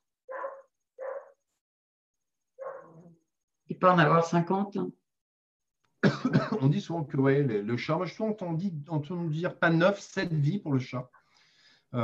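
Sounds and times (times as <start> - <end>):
dog barking: 0.3 - 1.4, 2.6 - 3.1.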